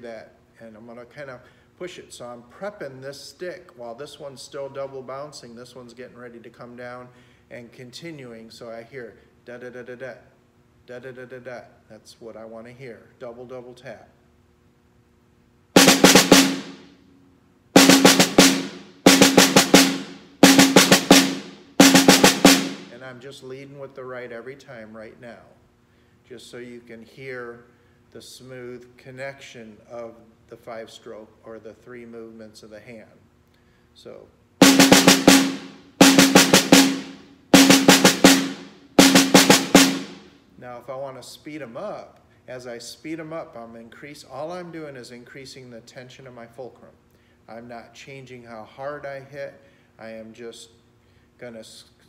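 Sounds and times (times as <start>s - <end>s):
snare drum rolls: 15.8s - 16.9s, 17.8s - 23.0s, 34.6s - 40.4s.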